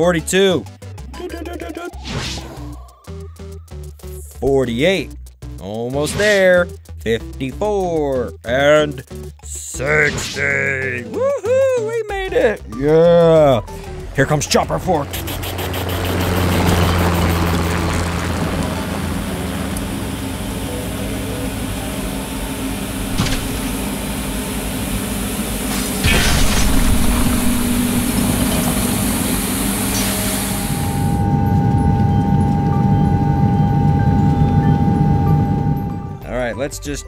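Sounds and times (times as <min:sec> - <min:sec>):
vehicle engine sound effect: 0:13.8 - 0:36.3
hiss: 0:25.7 - 0:31.1.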